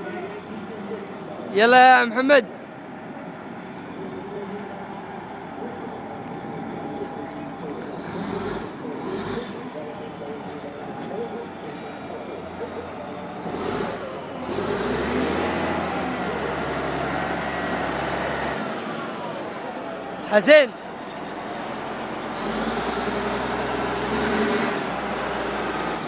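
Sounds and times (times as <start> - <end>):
wheel loader diesel engine revving: 4.1 - 20.2, 20.9 - 26.0.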